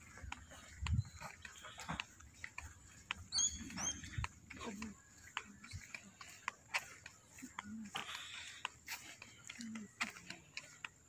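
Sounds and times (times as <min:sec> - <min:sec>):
footsteps on grassy path: 0:00.0 - 0:11.0
high whistled bird calls: 0:03.3 - 0:04.2.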